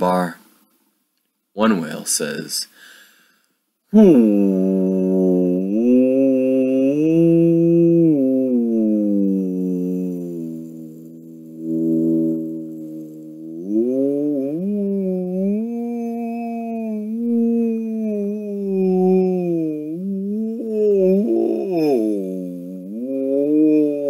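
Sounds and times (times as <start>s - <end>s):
man imitating whale call: 3.9s - 24.0s.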